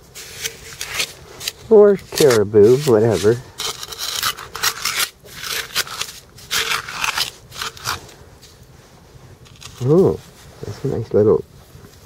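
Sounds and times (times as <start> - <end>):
trowel scraping sand and gravel: 0.0 - 8.2, 9.4 - 10.2.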